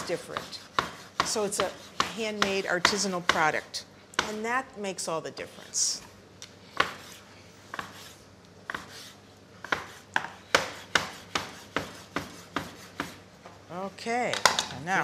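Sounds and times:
knife chopping on wooden board: 0:00.0 - 0:03.4, 0:06.8 - 0:07.1, 0:08.7 - 0:09.0, 0:09.6 - 0:13.2.

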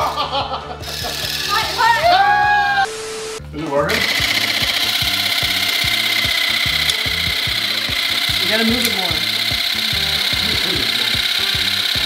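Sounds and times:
carving tool buzzing: 0:00.8 - 0:02.1, 0:02.9 - 0:12.0.

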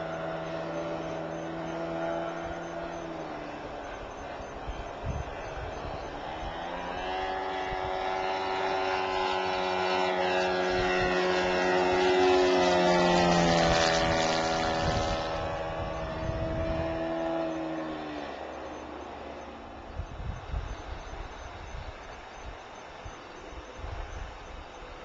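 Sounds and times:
model plane engine flying past: 0:00.0 - 0:25.0.

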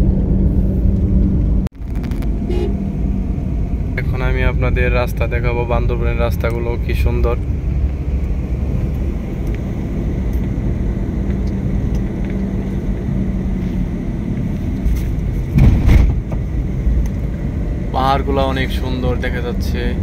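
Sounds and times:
car engine and tyres rumbling: 0:00.0 - 0:20.0
brief loud thud: 0:15.5 - 0:16.4.

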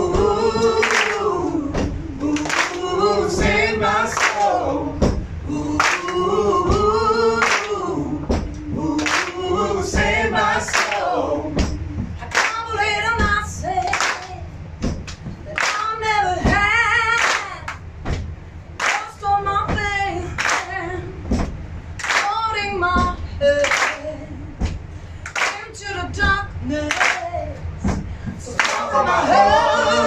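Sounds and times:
group singing led by woman: 0:00.0 - 0:14.6, 0:15.4 - 0:17.8, 0:18.8 - 0:30.0
hand claps: 0:00.7 - 0:05.2, 0:05.8 - 0:26.3, 0:26.9 - 0:28.9.

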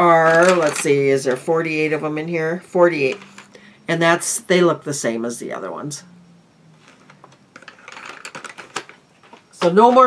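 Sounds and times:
wooden pencils clicking: 0:00.0 - 0:01.5, 0:07.0 - 0:10.0.

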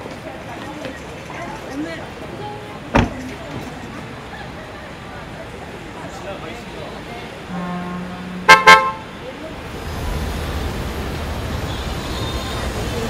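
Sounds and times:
car engine rumble: 0:00.0 - 0:13.0
car horn toots: 0:07.5 - 0:09.1.

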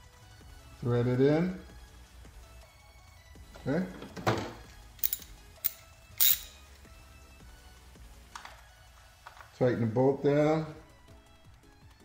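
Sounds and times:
quiet background music: 0:00.0 - 0:12.0
metal tools clinking: 0:05.0 - 0:06.7.

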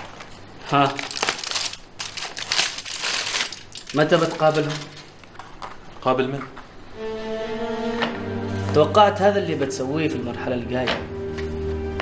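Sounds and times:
aluminium foil crinkling: 0:00.0 - 0:06.1.

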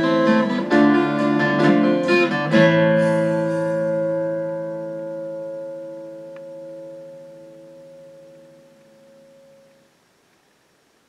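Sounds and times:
strummed guitar chord ringing: 0:00.0 - 0:10.0
faint small tick: 0:06.3 - 0:06.5.

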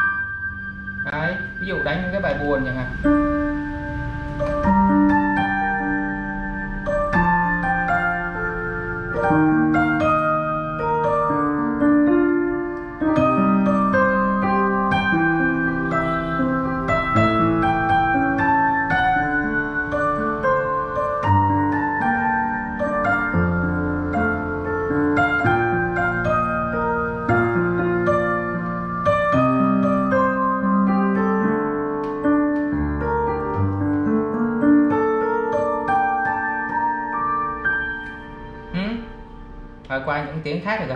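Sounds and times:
slow sad piano piece: 0:00.0 - 0:40.2.

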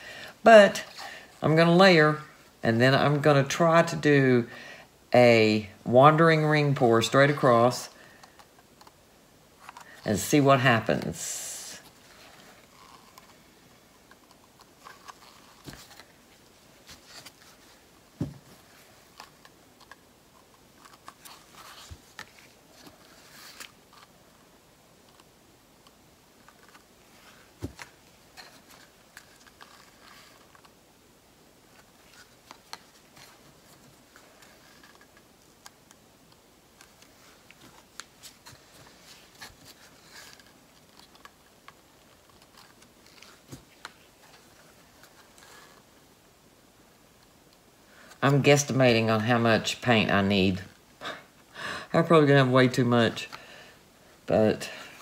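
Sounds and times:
soft rustles: 0:09.6 - 0:25.3, 0:26.3 - 0:30.8, 0:31.6 - 0:36.0, 0:36.7 - 0:46.1.

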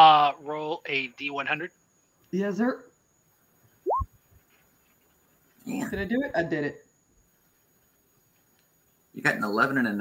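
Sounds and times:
electronic bloop rising tone: 0:03.9 - 0:04.1.

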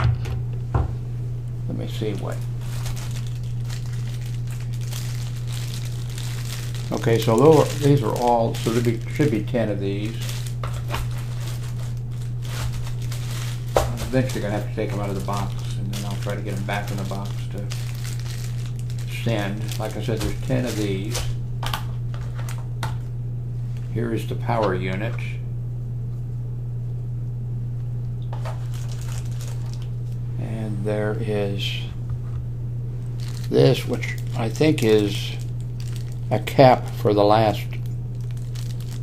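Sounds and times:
steady low hum: 0:00.0 - 0:39.0
plastic packaging crinkling: 0:01.9 - 0:22.7, 0:28.3 - 0:30.2, 0:33.0 - 0:39.0.

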